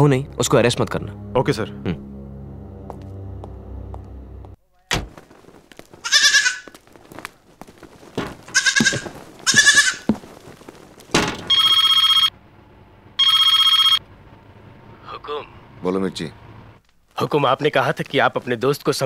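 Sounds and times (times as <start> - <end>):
goats bleating: 6.0 - 6.8, 8.4 - 10.2
telephone ringing: 11.5 - 12.3, 13.2 - 14.0.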